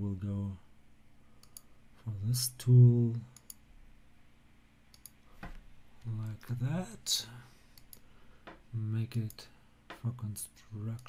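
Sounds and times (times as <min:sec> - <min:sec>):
computer mouse clicks: 0:01.4 - 0:01.7, 0:03.4 - 0:03.6, 0:04.9 - 0:05.6, 0:07.8 - 0:08.6.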